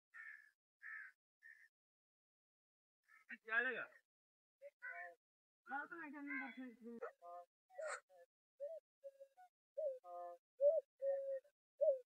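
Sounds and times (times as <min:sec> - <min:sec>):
crow cawing: 0:00.1 - 0:01.7, 0:03.0 - 0:03.3, 0:04.8 - 0:05.2, 0:06.2 - 0:06.7.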